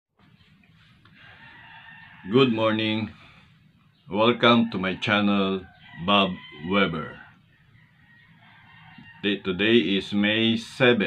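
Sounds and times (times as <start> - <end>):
low room noise: 0.2 - 11.0.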